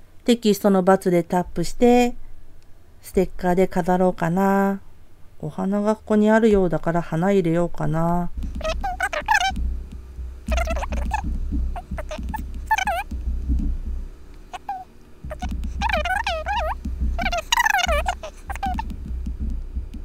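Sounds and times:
sped-up speech: 0:10.5 - 0:11.2, 0:11.8 - 0:13.1, 0:14.6 - 0:18.9.

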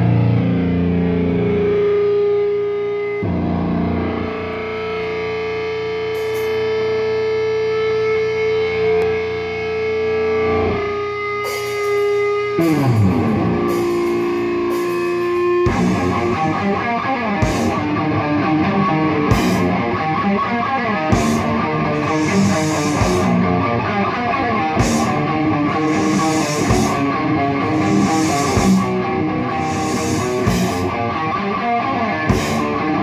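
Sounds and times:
distorted electric guitars: 0:00.0 - 0:33.0
cymbal crashes: 0:06.1 - 0:06.7, 0:11.4 - 0:18.0, 0:21.1 - 0:31.2.

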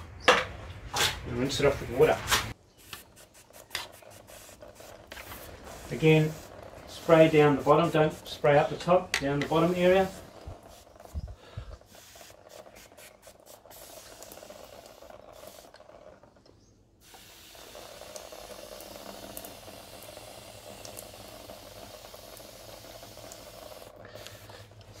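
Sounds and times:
pressure sprayer hissing: 0:02.8 - 0:16.2, 0:17.0 - 0:25.0.

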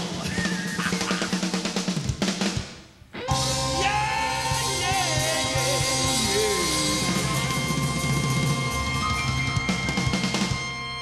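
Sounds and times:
drum kit beat: 0:00.0 - 0:11.0
live rock band: 0:00.0 - 0:11.0.

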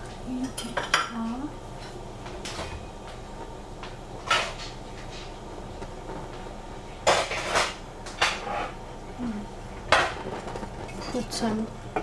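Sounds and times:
utensils clanking against dishes: 0:09.9 - 0:11.6.

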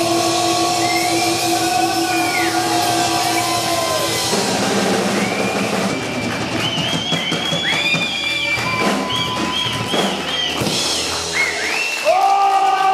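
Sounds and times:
live rock song: 0:00.0 - 0:12.1
crowd whistling: 0:00.0 - 0:12.9
audience applause: 0:00.8 - 0:12.9.

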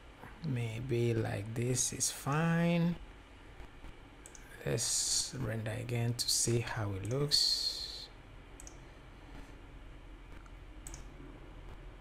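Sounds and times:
low steady hum: 0:00.0 - 0:12.0
faint computer mouse clicks: 0:08.6 - 0:08.8, 0:10.4 - 0:11.1.

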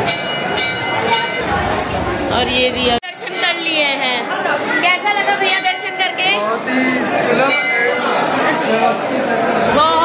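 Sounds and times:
crowd chatter in a hall: 0:00.0 - 0:10.0.

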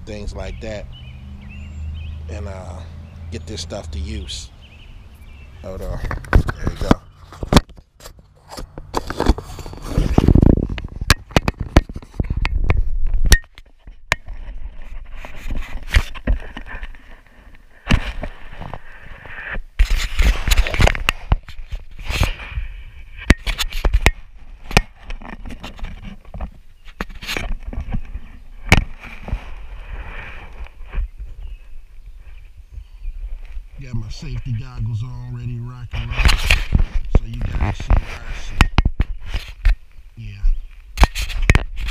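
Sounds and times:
light scraping and rustling: 0:05.2 - 0:41.9.

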